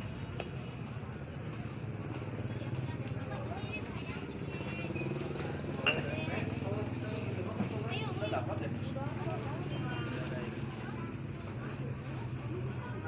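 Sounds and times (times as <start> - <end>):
indistinct chatter of shoppers: 0.0 - 13.0.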